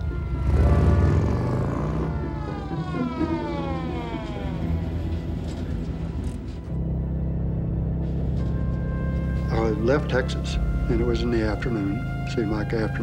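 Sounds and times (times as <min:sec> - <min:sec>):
motorcycle engine revving: 0:00.0 - 0:02.7
police siren winding down: 0:00.0 - 0:06.9
car engines running: 0:00.0 - 0:12.9.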